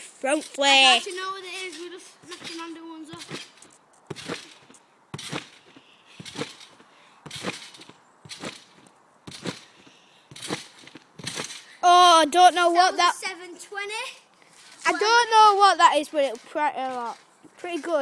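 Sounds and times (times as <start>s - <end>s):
feet thumping on trampoline: 1.0s - 11.8s.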